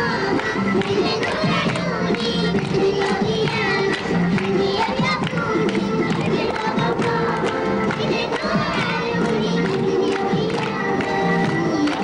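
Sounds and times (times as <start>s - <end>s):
music with a steady beat: 0.0s - 12.0s.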